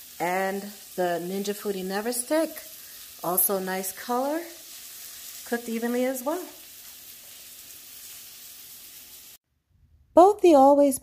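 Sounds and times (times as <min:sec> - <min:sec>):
food sizzling in a pan: 0:00.0 - 0:09.4.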